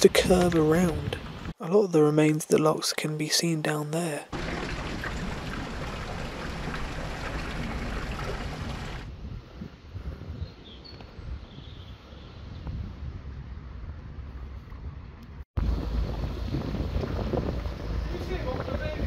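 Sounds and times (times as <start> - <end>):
wind buffeting microphone: 4.4 - 19.0.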